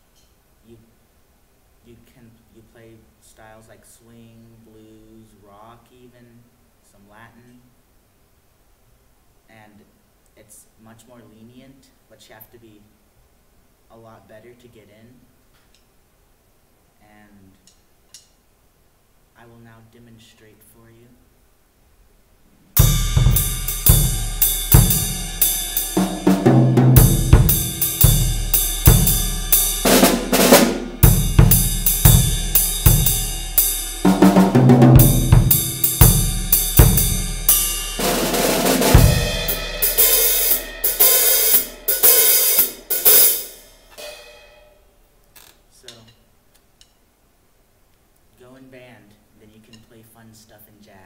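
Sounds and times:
drum kit played solo: 22.8 - 44.9
cymbal ringing: 22.8 - 45.0.

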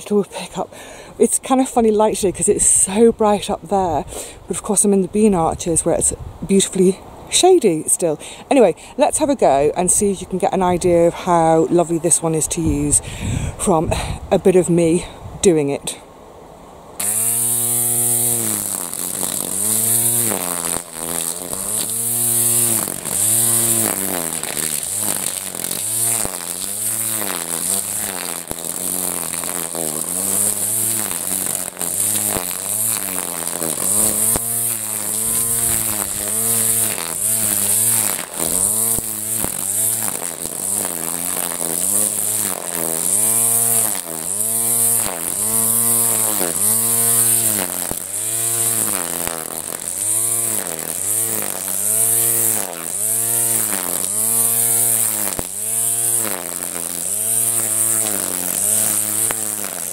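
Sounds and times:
grass trimmer cutting grass: 0.0 - 16.0, 17.0 - 59.9.

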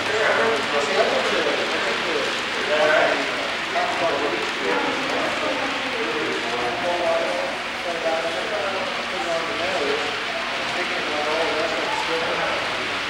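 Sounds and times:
people talking indistinctly: 0.0 - 12.9.

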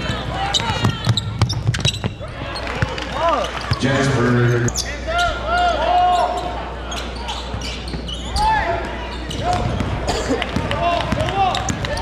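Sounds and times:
sneakers squeaking on court: 0.0 - 5.3, 6.2 - 12.0
voices in gym: 0.0 - 12.0
basketball bouncing: 9.3 - 12.0.

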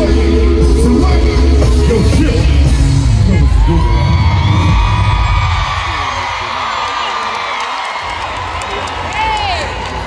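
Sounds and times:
live band playing: 0.0 - 4.0
bass guitar: 0.0 - 5.4
crowd cheering and whooping: 3.1 - 10.0.

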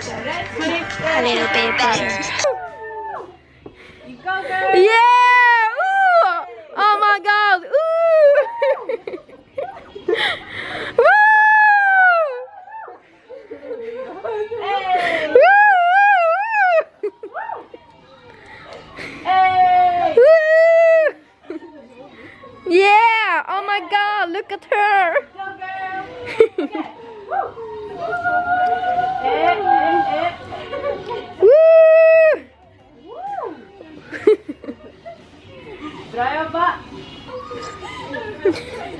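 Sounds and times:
squeaky yelps: 37.3 - 38.4.

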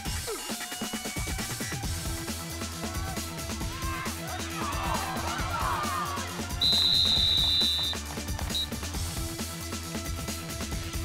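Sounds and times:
music with steady beat: 0.0 - 11.0
referee whistle blast: 6.5 - 8.8.

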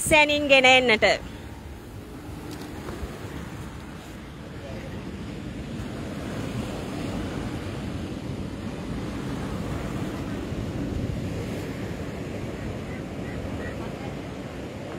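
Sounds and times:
wind rumbling on microphone: 0.0 - 14.9
surf breaking on beach: 1.1 - 14.9.

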